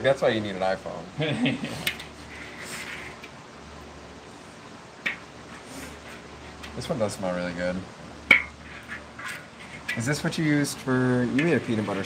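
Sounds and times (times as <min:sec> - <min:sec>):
metal spatula scraping kettle: 0:08.5 - 0:10.7, 0:11.4 - 0:12.0.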